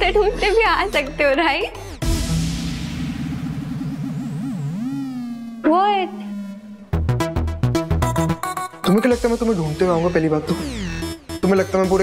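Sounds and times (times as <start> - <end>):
wobbling low synthesizer tone: 2.0 - 8.4.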